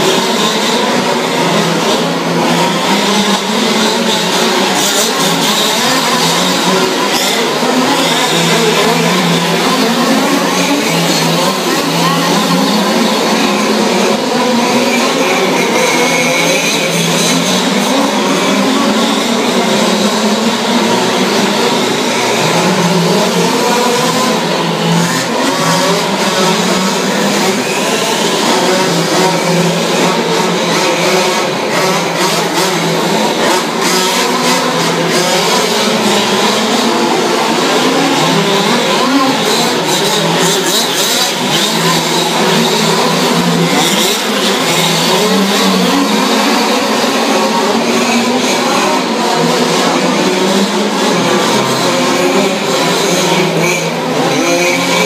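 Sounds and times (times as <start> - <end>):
small two-stroke engines buzzing: 0.0 - 55.0.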